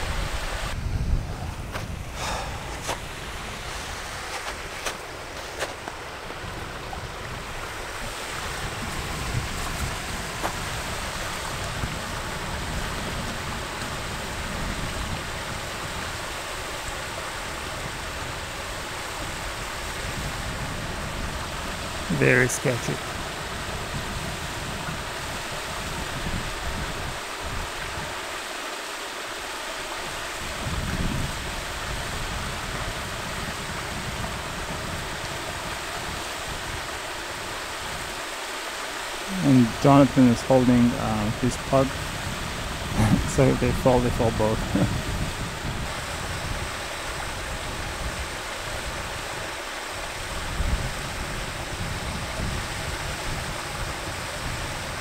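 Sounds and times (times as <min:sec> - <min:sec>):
wind buffeting microphone: 0:00.0 - 0:28.2, 0:30.0 - 0:38.2, 0:39.3 - 0:55.0
water rushing through dam: 0:00.0 - 0:55.0
brief voice: 0:43.0 - 0:43.8.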